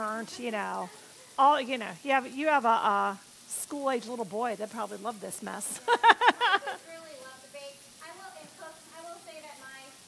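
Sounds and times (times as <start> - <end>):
woman laughing: 5.7 - 6.9.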